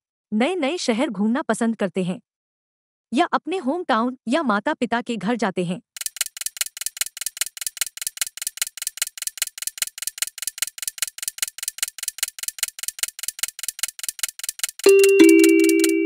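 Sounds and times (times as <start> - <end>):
clock ticking rapidly: 6.0 - 16.0.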